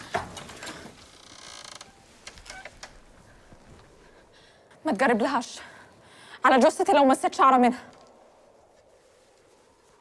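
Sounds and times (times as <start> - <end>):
door creaking open: 0.0 - 3.1.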